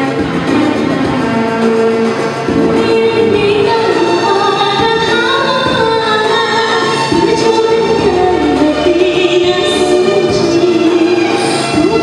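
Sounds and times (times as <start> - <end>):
musical accompaniment: 0.0 - 12.0
woman singing through microphone: 0.0 - 12.0.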